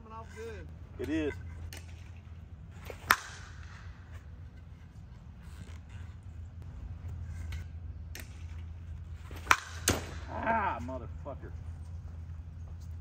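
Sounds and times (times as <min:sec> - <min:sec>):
steady low rumble: 0:00.0 - 0:05.4, 0:06.2 - 0:13.0
bat striking softball: 0:02.8 - 0:04.0, 0:09.2 - 0:10.4.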